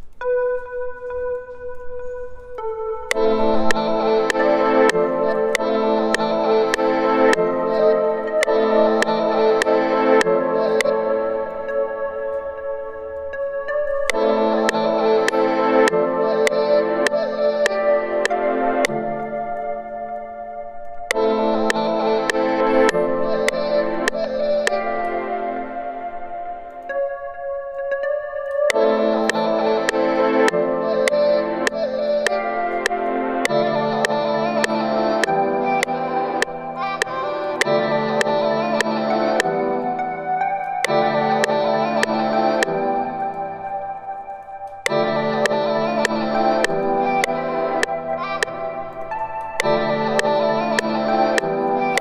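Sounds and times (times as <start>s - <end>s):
synthesizer chords: 0.0s - 52.0s
sharp metronome clicks: 44.3s - 52.0s.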